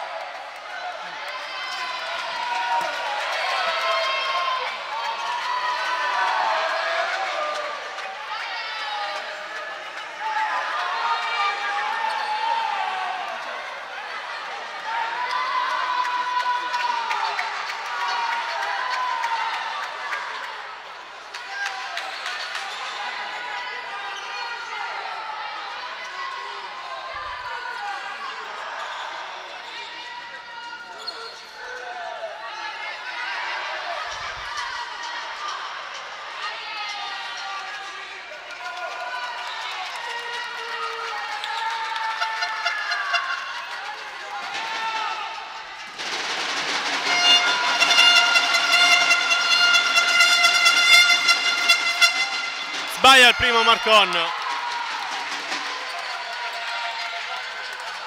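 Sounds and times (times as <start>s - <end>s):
crowd shouting: 52.2s - 54.8s.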